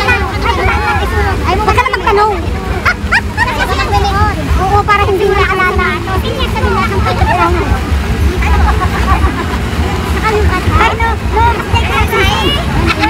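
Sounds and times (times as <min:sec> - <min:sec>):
people talking and calling: 0:00.0 - 0:13.0.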